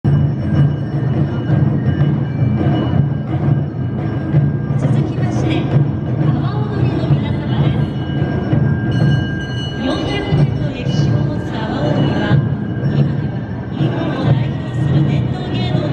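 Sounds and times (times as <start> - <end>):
taiko drums beating: 0.0 - 15.9.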